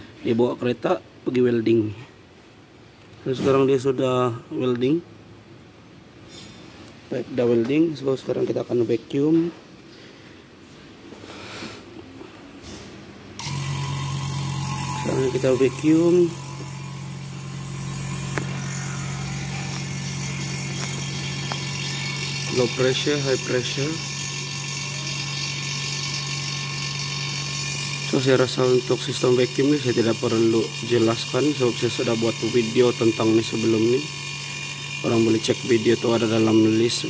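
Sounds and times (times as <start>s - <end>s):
vacuum pump humming: 13.2s - 37.0s.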